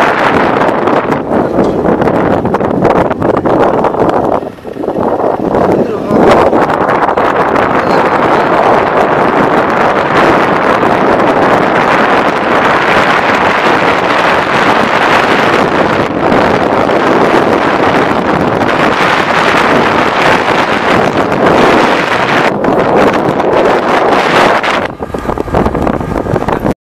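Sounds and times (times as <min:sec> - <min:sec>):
road and engine noise: 0:00.0 - 0:26.8
wind noise on microphone: 0:00.0 - 0:26.8.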